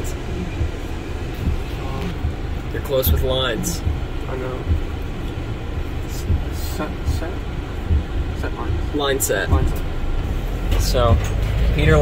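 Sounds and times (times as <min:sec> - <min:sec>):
van engine rumble inside cabin: 0:00.0 - 0:12.0.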